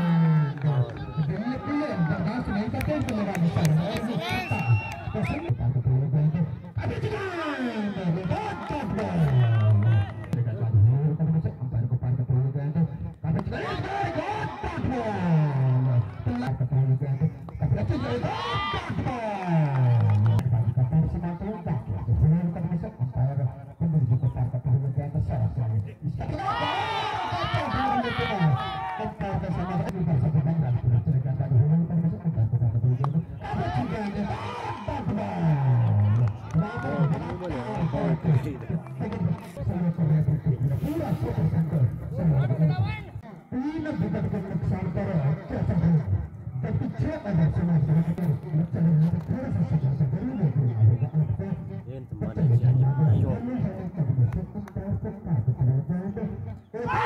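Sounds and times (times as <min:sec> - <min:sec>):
man talking in sing-song phrases: 0:00.0 - 0:57.0.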